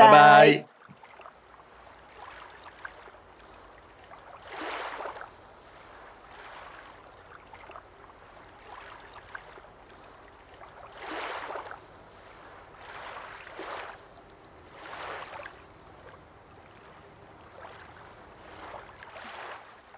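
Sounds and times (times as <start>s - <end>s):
small waves lapping on rocks: 0.7s - 19.9s.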